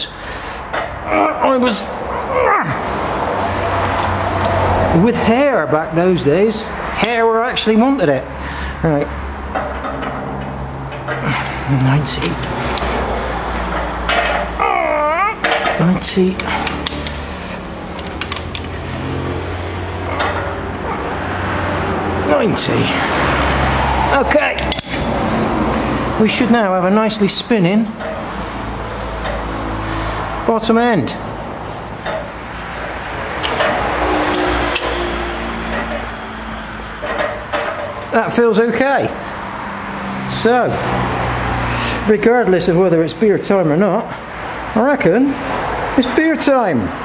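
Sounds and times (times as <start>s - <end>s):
engine crankshaft rubbing: 0.0s - 43.2s
metallic clicks: 24.6s - 25.2s.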